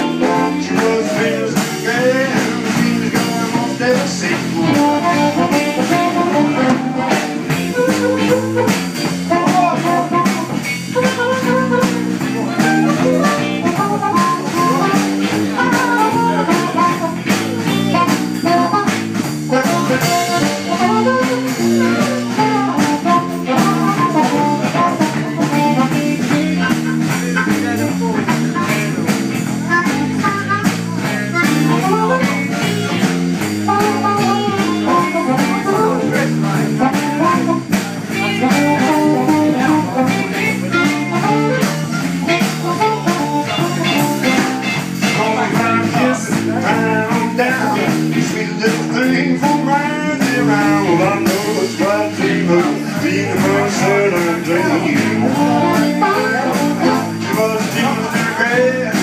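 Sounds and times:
amplified harmonica: 0.0 - 59.0
live blues band playing: 0.0 - 59.0.

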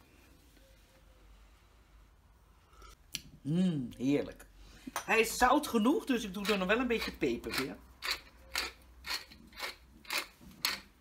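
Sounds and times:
pepper mill grinding: 6.2 - 11.0.

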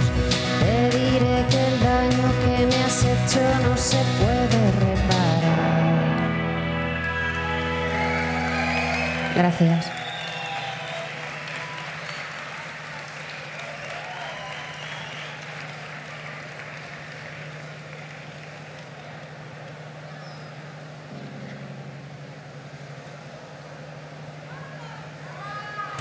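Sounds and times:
audience applauding: 6.7 - 20.2
steady low hum: 15.3 - 26.0.

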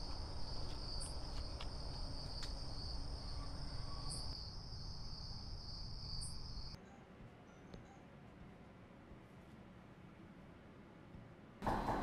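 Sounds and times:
crickets trilling: 0.0 - 6.8.

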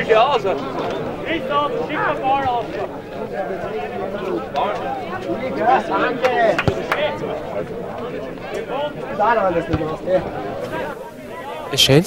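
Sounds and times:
men shouting and talking: 0.0 - 12.0.

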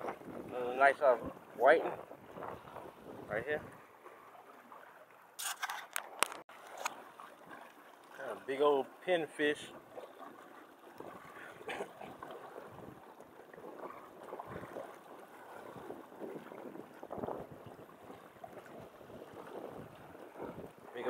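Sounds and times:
wind buffeting microphone: 0.0 - 3.9, 10.9 - 21.0
small waves lapping: 0.0 - 21.0.

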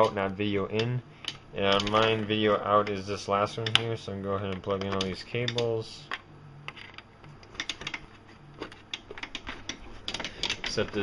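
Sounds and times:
cable plugs clicking and rattling: 0.0 - 11.0.

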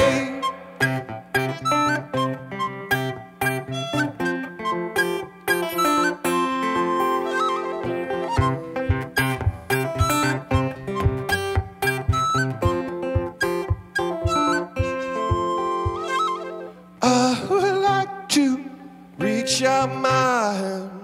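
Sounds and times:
acoustic guitar picking: 0.0 - 21.0.

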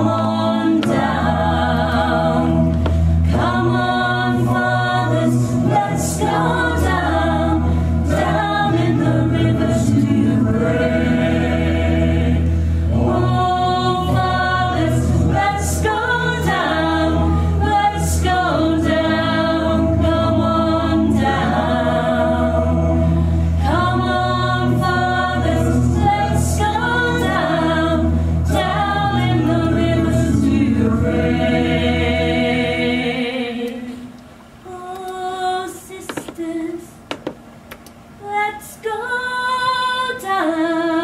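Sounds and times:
steady low bass: 0.0 - 33.0
voices singing in chorus: 0.0 - 37.1, 38.2 - 41.0.

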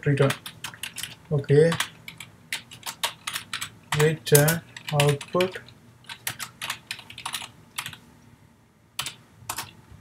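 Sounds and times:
typing on keyboard: 0.2 - 8.0, 9.0 - 9.8.

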